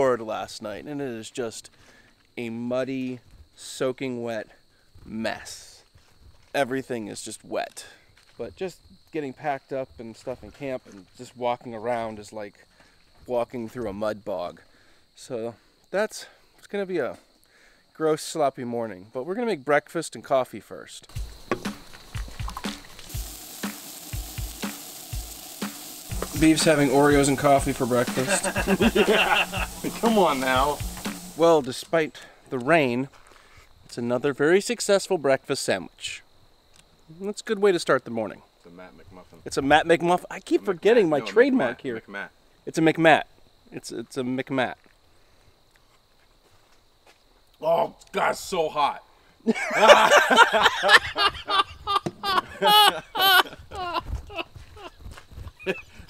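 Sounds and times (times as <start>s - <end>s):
background music with beat: 21.1s - 31.5s
sausages sizzling on griddle: 21.1s - 31.8s
man's loud wordless outburst: 26.4s - 30.8s, 47.6s - 49.0s, 52.4s - 53.9s.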